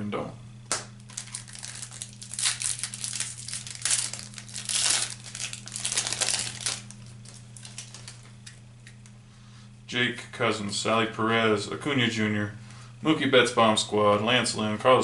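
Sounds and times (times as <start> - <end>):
steady low hum: 0.0 - 15.0
foil wrapper crinkling and tearing: 1.0 - 8.6.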